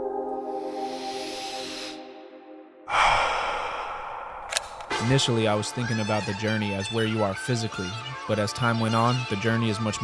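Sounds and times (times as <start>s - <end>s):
man exhaling deeply: 2.9s - 5.1s.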